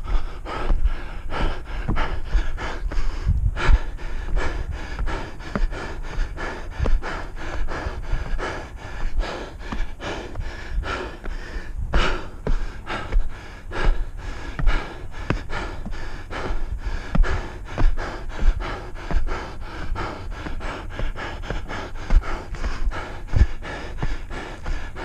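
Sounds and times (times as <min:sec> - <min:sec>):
footfalls on wooden stairs: 0:00.0 - 0:25.0
runner breathing hard: 0:00.0 - 0:25.0.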